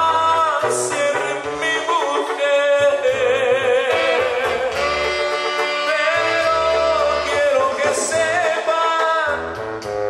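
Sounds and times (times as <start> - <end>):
band music with singing: 0.0 - 10.0
bass line: 0.0 - 10.0.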